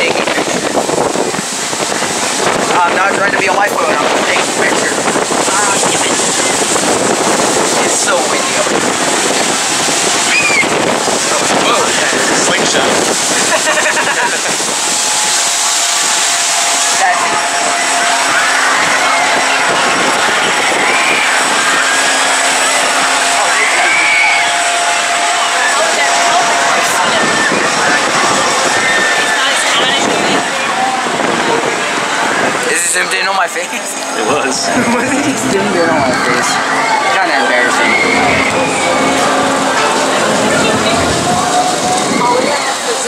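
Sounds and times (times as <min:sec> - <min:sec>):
wind on microphone: 0:00.0 - 0:43.0
indistinct far-off voices: 0:33.9 - 0:43.0.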